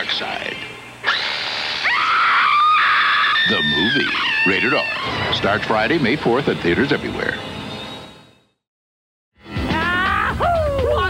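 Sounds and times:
long high-pitched scream: 1.0s - 5.4s
sudden noisy hit: 5.0s - 6.6s.

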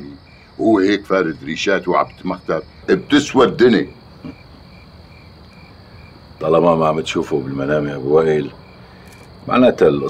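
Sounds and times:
cricket chirping: 0.0s - 10.0s.

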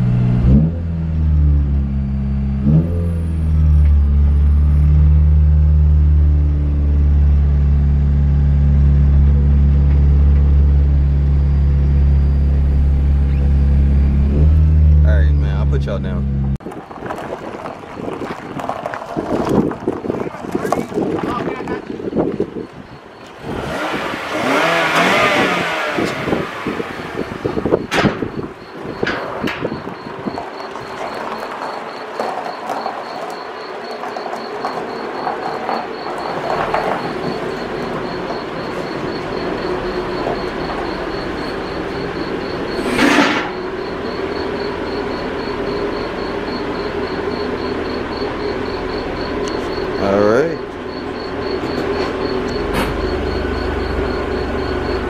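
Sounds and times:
car engine at low revs: 0.0s - 17.6s, 22.2s - 30.2s, 35.1s - 55.0s.

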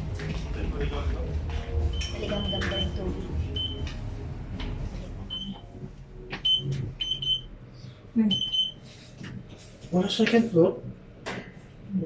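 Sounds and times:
elevator button beeps: 1.9s - 3.9s, 5.3s - 5.7s, 6.4s - 7.5s, 8.3s - 8.8s.

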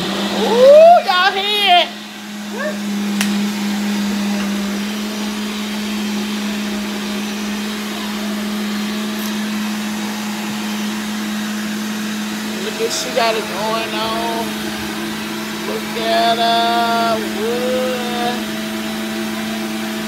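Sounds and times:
blender motor whirring: 0.0s - 20.0s.

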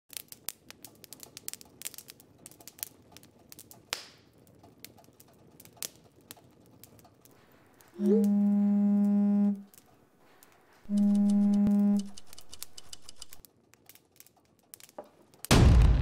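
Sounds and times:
wood fire crackling: 0.1s - 16.0s.

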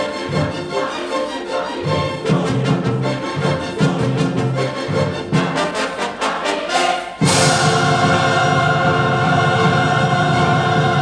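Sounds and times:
choir and orchestra sustained chord: 0.0s - 11.0s.

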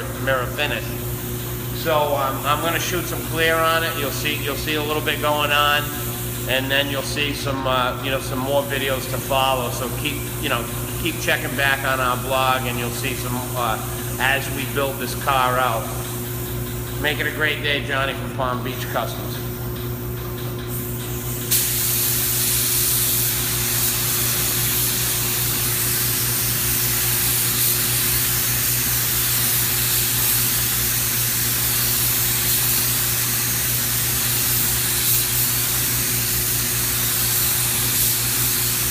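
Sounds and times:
spray gun hiss: 0.0s - 38.9s.

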